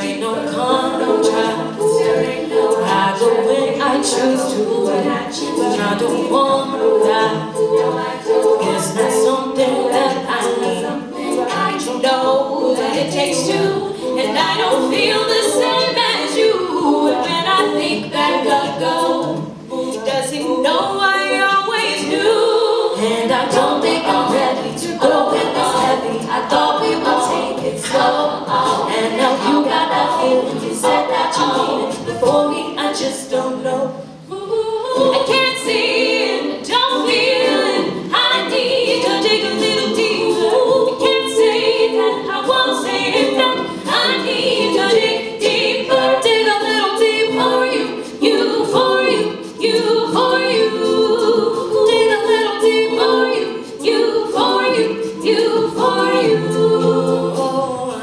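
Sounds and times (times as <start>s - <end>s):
women singing in harmony: 0.0s - 58.0s.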